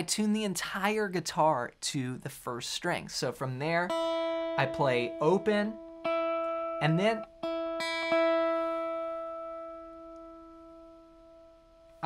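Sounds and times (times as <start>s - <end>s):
electric guitar note ringing: 3.9s - 12.0s.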